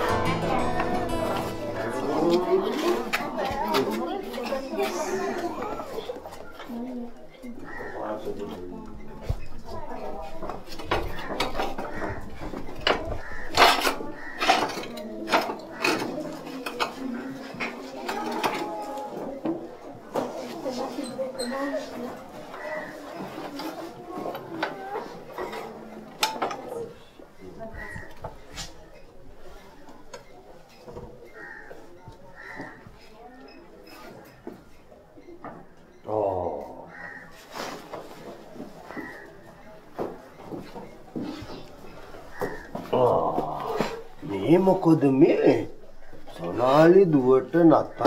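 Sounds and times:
soft voices: 0.0 - 12.4, 41.1 - 44.6
children chattering and laughing: 0.0 - 48.0.

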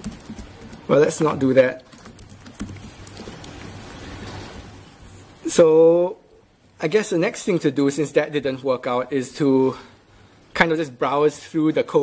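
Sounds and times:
laptop keyboard taps: 1.8 - 3.6.

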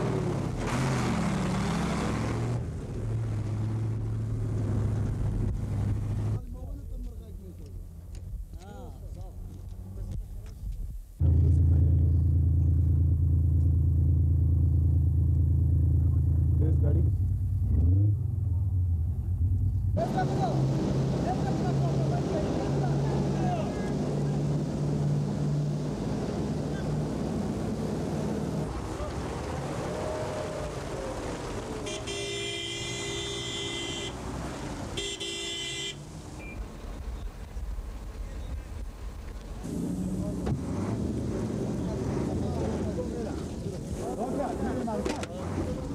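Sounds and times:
outdoor background noise: 0.0 - 45.9
horn blasts: 31.8 - 34.2, 35.0 - 36.0.

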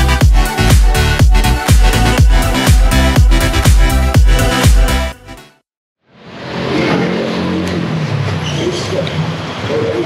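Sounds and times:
traffic hum: 6.2 - 10.0.

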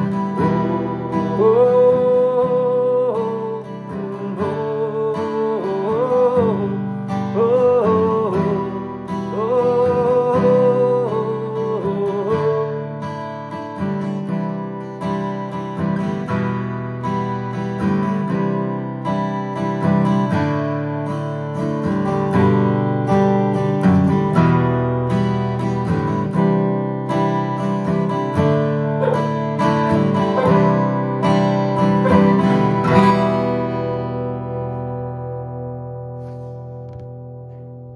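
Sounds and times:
acoustic guitar strumming: 0.0 - 37.9
harmonica held notes: 29.0 - 34.0.

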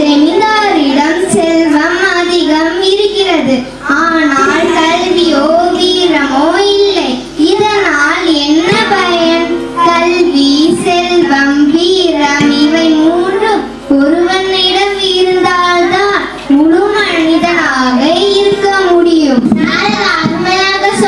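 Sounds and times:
girl singing into microphone: 0.0 - 21.0.

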